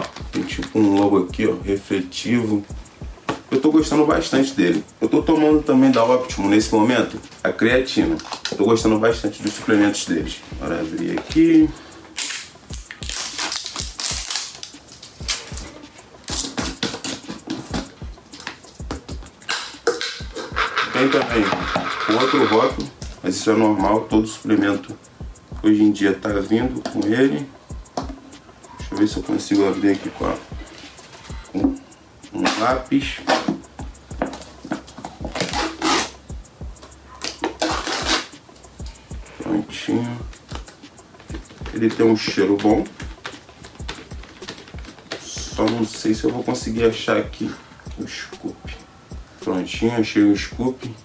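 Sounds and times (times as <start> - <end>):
background music with low beat: 0.0 - 51.0
plastic tub lid clicking and creaking: 19.5 - 22.7
pencil tearing through tub seal: 35.4 - 36.2, 37.3 - 38.3.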